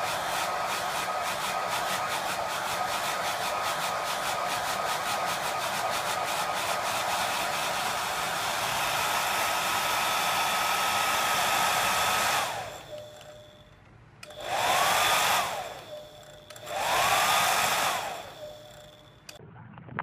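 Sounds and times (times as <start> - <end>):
hair dryer running: 0.0 - 13.5, 14.2 - 19.4.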